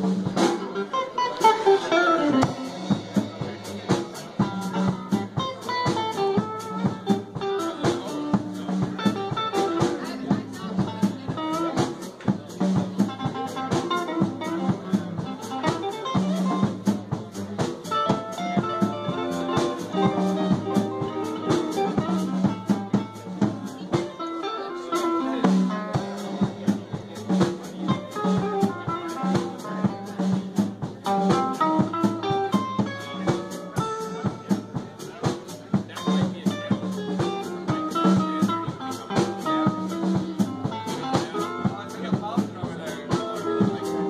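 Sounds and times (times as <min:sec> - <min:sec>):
electric guitar: 0:00.0 - 0:26.4, 0:27.2 - 0:44.0
drum kit hits: 0:01.4 - 0:24.2, 0:25.4 - 0:44.0
upright double bass: 0:01.6 - 0:24.2, 0:25.0 - 0:44.0.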